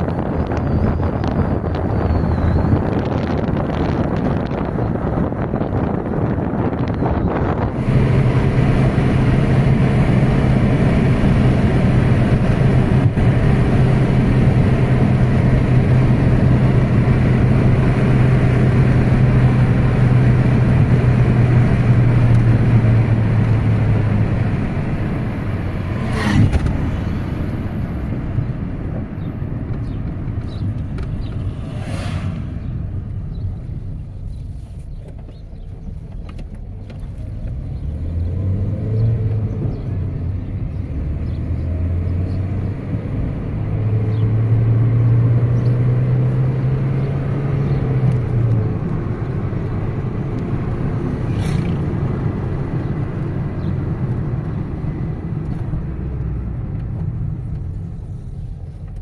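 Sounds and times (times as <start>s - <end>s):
car engine and road noise: 0.0s - 59.0s
low engine hum: 0.0s - 59.0s.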